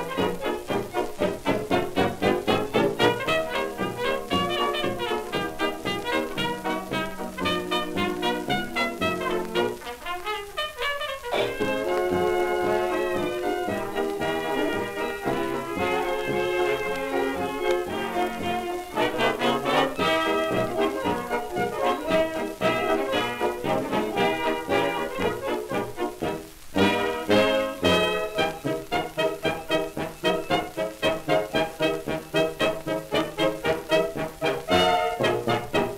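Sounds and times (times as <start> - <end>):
dance orchestra with brass: 0.0 - 35.9.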